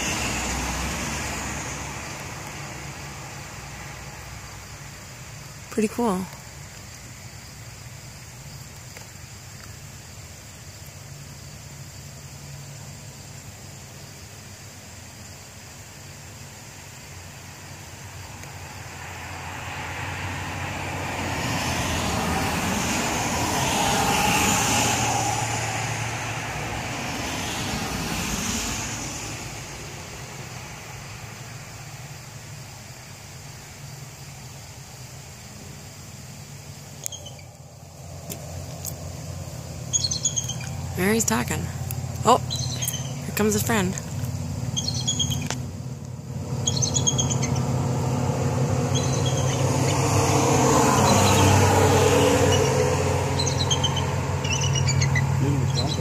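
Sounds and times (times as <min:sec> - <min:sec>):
road vehicle passing: 0:00.0 - 0:08.5, 0:15.7 - 0:56.0.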